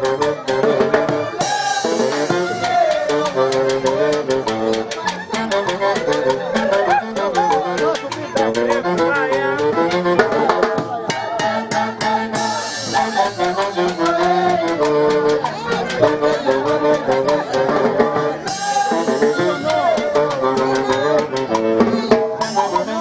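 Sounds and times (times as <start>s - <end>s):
live band dance tune: 0.0s - 23.0s.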